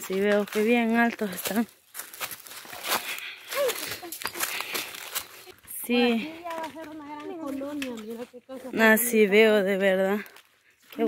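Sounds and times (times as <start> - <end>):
footsteps crunching dry leaves: 0.0 - 11.0.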